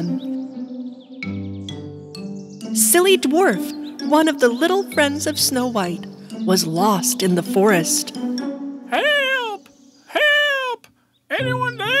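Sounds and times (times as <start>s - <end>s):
cartoon voice calling out: 8.9s - 12.0s.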